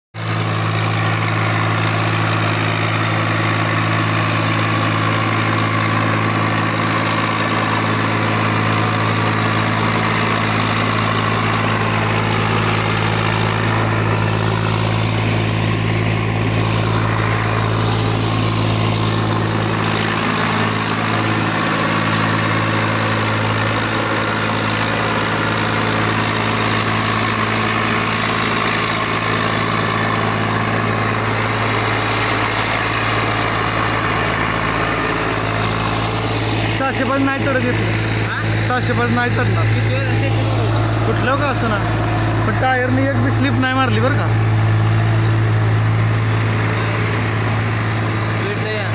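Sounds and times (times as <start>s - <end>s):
tractor diesel engine running: 0.1s - 48.9s.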